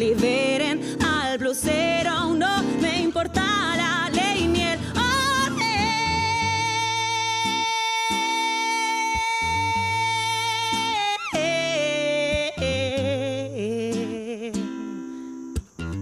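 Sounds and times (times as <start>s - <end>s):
woman singing: 0.0s - 15.3s
acoustic guitar: 0.0s - 16.0s.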